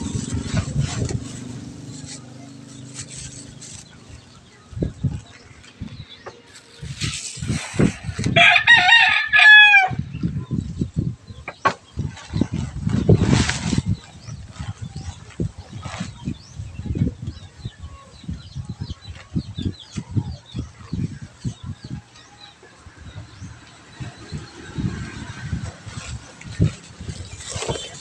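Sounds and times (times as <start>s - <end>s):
small birds chirping: 0.0s - 8.3s, 10.0s - 28.0s
chickens: 9.9s - 28.0s.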